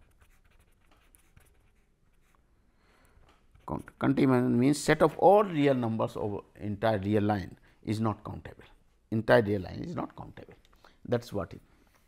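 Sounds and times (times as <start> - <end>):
pen scratching on paper: 0.0 - 2.4, 3.2 - 4.0.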